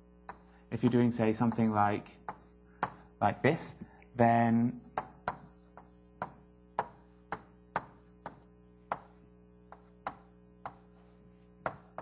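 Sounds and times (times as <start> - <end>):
taps of writing on a board: 0.2 - 3.1, 4.8 - 12.0.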